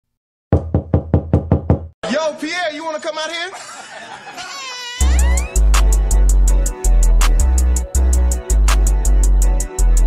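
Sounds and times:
knocking on a door: 0:00.5 - 0:02.0.

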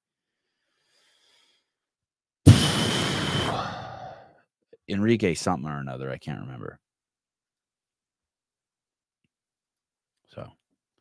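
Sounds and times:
man sighing: 0:02.5 - 0:04.4.

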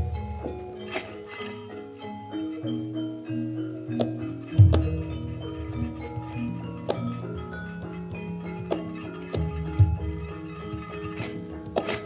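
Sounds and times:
metallophone and gong tones: 0:00.0 - 0:12.0
sharp knocks: 0:04.0 - 0:07.2
low drum strokes: 0:04.6 - 0:07.4, 0:08.6 - 0:11.2.

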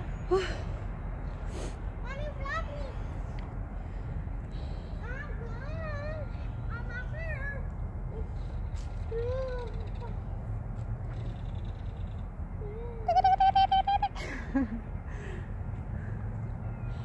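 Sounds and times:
low outdoor rumble: 0:00.0 - 0:17.0
child making playful calls: 0:05.1 - 0:10.4, 0:12.5 - 0:14.2
child laughing: 0:12.6 - 0:15.0.

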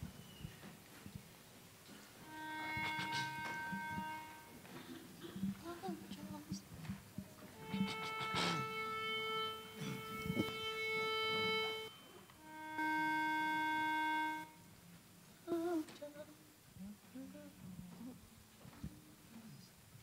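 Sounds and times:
sustained reference notes: 0:02.2 - 0:05.0, 0:07.6 - 0:14.7.

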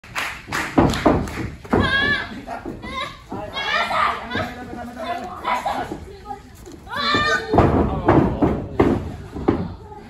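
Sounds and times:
heavy thumps: 0:06.7 - 0:10.0.

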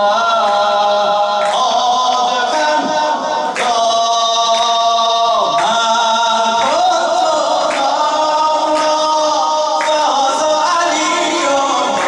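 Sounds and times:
unaccompanied devotional singing: 0:00.0 - 0:12.0.

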